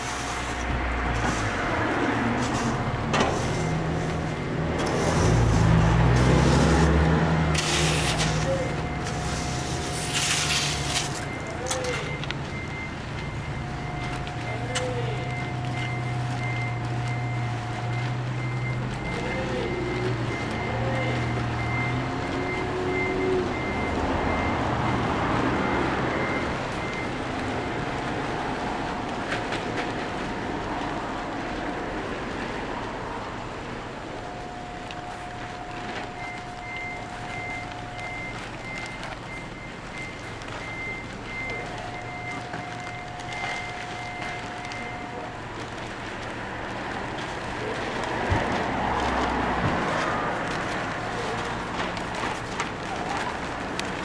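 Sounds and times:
reversing alarm beeping: 0:00.0 - 0:32.5, 0:33.1 - 0:47.8
engine humming low: 0:00.0 - 0:54.0
low steady tone: 0:07.6 - 0:24.6, 0:33.2 - 0:46.3.

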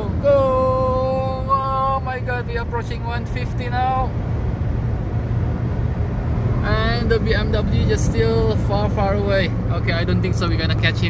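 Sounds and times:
in-cabin car drone: 0:00.0 - 0:11.0.

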